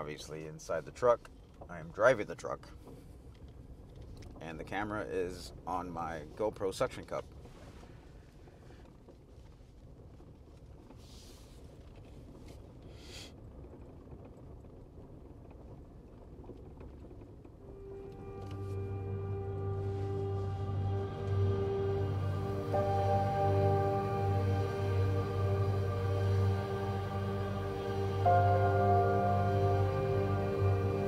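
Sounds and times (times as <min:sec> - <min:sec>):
slow ambient music: 0:17.6 - 0:31.0.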